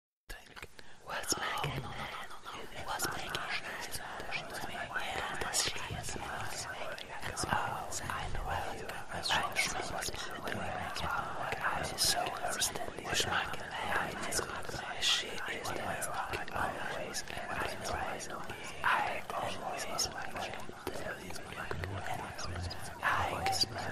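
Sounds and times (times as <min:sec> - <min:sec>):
ghostly whispering voices: 0:00.3 - 0:23.9.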